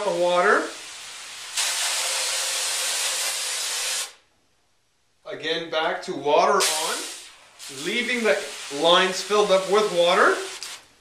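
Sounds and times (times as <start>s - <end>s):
compressed air hissing: 0.0s - 4.2s, 6.6s - 11.0s.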